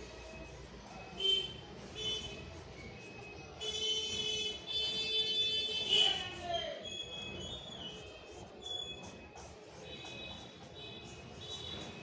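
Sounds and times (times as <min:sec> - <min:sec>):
marker pen squeaking on paper: 0:00.0 - 0:03.3, 0:05.8 - 0:12.0.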